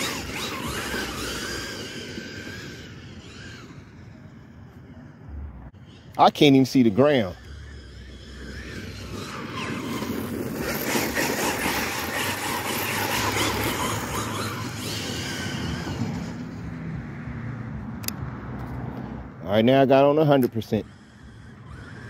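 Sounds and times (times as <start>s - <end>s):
electric rc truck motor whine: 0.0s - 17.0s, 20.4s - 22.0s
tyre and wind noise: 7.3s - 19.4s.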